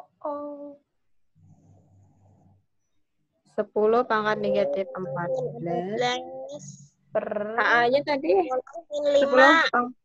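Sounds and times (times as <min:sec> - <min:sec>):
faint low sound: 0:03.6 - 0:09.8.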